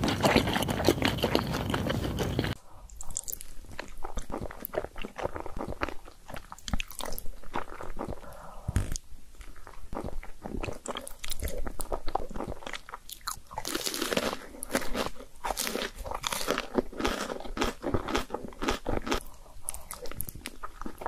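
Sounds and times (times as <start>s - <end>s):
crunchy chewing of fried food: 0.0s - 21.0s
wet chewing and slurping noodles: 0.0s - 21.0s.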